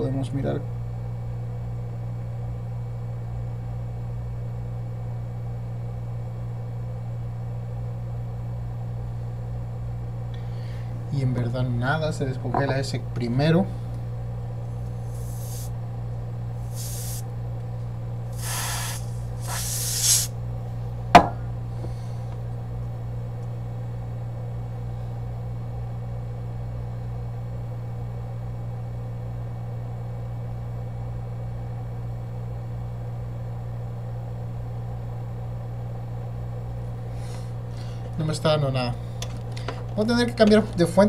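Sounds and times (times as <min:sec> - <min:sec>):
low electrical hum: 0:00.0 - 0:41.0
freeze spray hissing: 0:15.0 - 0:15.7, 0:16.6 - 0:17.2, 0:18.3 - 0:20.4.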